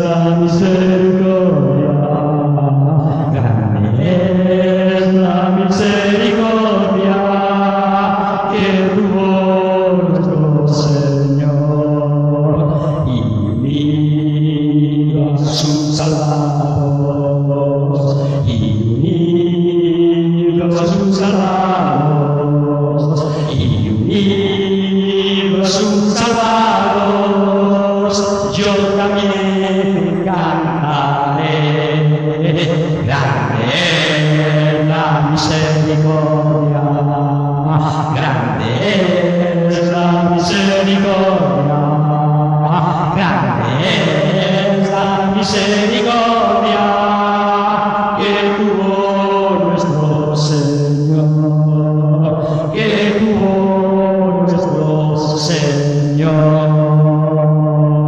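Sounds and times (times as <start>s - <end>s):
man singing a hymn: 0.0s - 58.0s.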